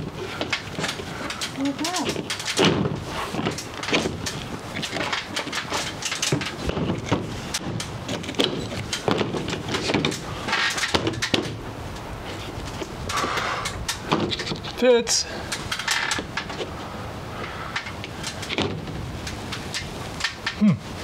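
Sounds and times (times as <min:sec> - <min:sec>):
plastic panel scraping: 0:00.0 - 0:11.6, 0:12.2 - 0:14.8.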